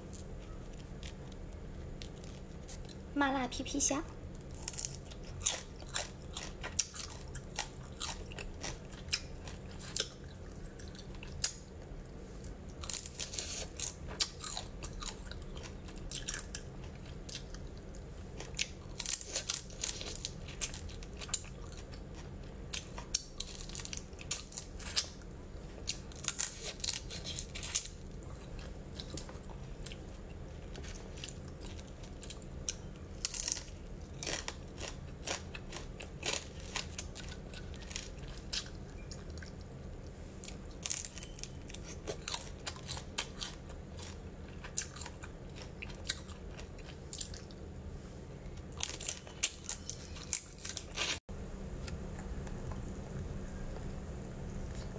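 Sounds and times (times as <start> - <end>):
chewing crunchy shells: 4.3 - 47.7, 48.5 - 51.2.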